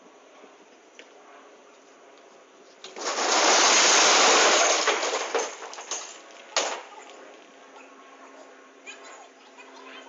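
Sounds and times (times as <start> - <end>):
plastic crates clattering: 2.8 - 7.2
glass bottles smashing: 3.0 - 6.8.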